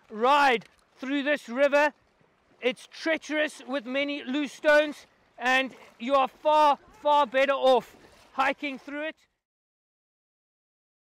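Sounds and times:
man speaking: 0.0s - 1.9s, 2.6s - 9.3s.

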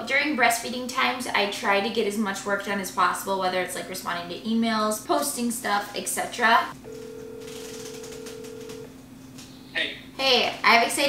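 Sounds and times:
telephone ringback tone: 6.8s - 8.9s.

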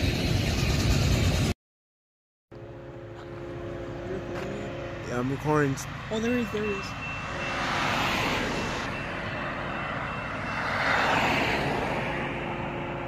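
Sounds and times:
passing vehicles: 2.6s - 13.0s.

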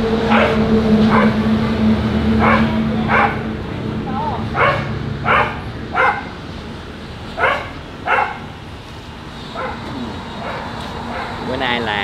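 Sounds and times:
dog barking: 0.3s - 1.4s, 2.4s - 3.5s, 4.6s - 6.4s, 7.4s - 8.5s, 9.6s - 11.5s.

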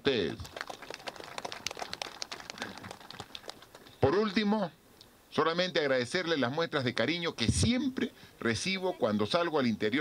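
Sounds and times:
small group applauding: 0.2s - 4.0s.

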